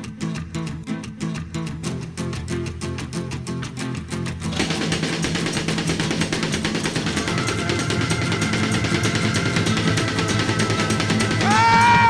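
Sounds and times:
rock band playing: 7.0 - 12.0.

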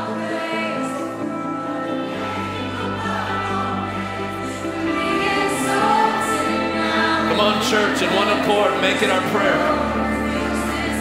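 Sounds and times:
group of voices singing: 0.0 - 11.0
held keyboard chords: 0.0 - 11.0.

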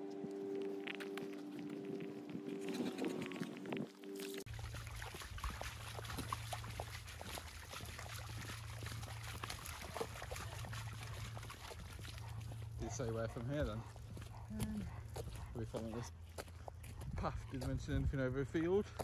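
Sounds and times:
dog paws splashing in puddles: 0.4 - 19.0.

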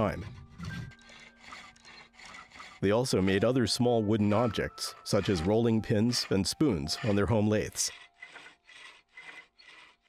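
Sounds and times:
hands rubbing wood: 0.0 - 10.0.

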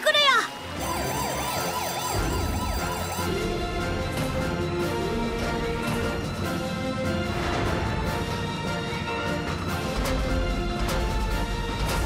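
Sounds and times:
alarm siren wailing: 0.6 - 4.9.

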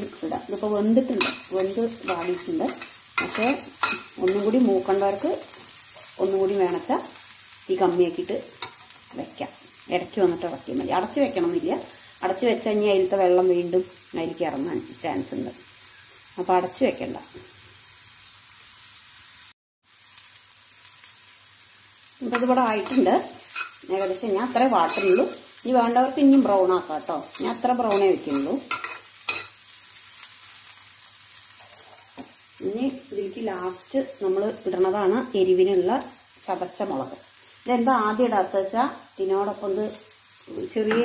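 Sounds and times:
soft frying sizzle: 0.0 - 41.0
metal spatula scraping a pan: 1.1 - 4.6, 22.3 - 25.6, 27.3 - 29.6.

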